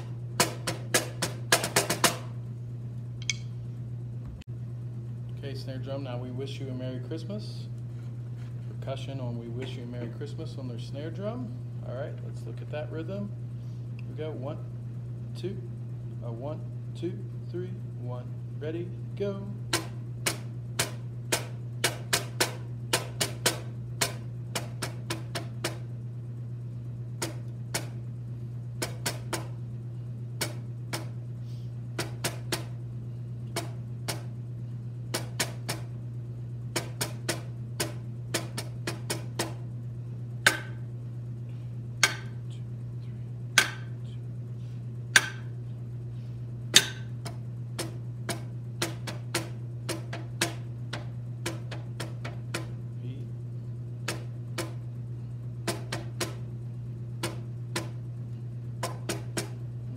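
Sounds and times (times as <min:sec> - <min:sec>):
low hum: 0:02.2 - 0:21.9, 0:23.6 - 0:59.9
drumsticks on snare drum: 0:42.0 - 0:42.4.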